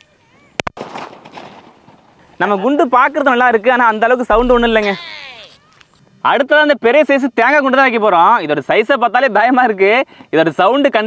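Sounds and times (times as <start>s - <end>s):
firecracker cracks: 0.6s - 2.4s.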